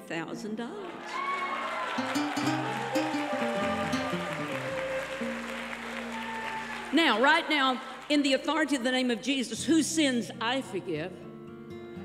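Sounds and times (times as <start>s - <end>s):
held keyboard chords: 2.0s - 6.0s.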